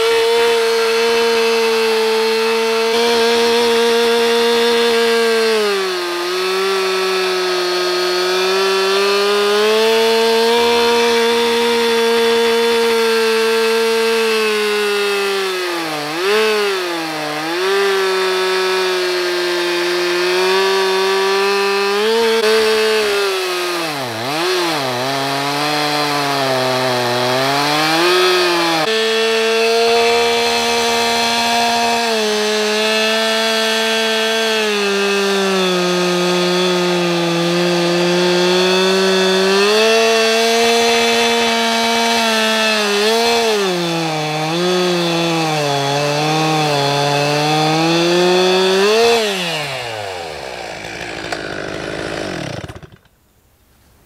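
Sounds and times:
chainsaw cutting log: 0:00.0 - 0:53.2.

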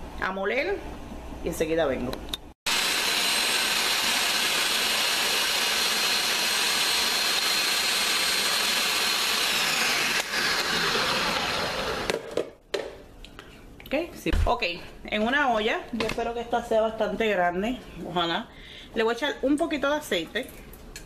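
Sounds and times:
food processor chopping: 0:02.7 - 0:12.6.

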